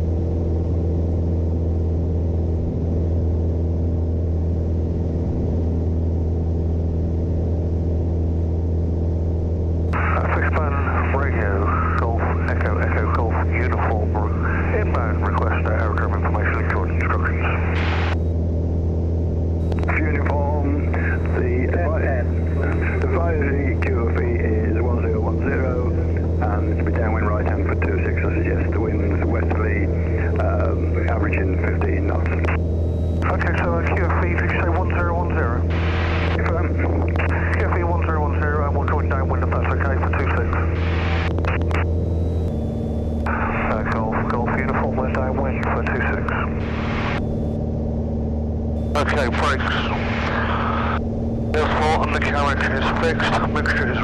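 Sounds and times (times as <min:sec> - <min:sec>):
light aircraft engine drone: 0:00.0 - 0:54.0
thin-sounding voices talking: 0:19.8 - 0:32.6, 0:48.9 - 0:54.0.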